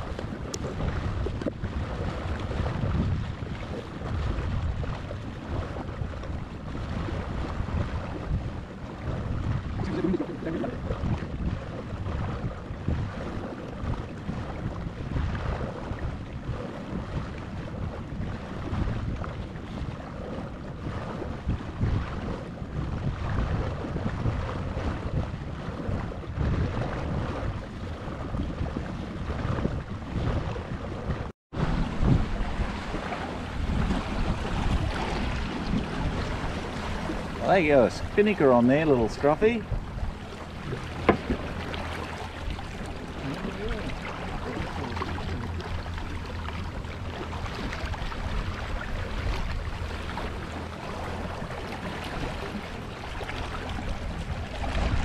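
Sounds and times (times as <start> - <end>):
water rushing along a hull: 0.0 - 55.0
wind buffeting microphone: 0.0 - 55.0.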